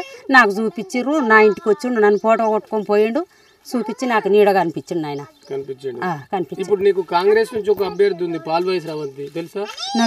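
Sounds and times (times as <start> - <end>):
woman talking: 0.0 - 5.4.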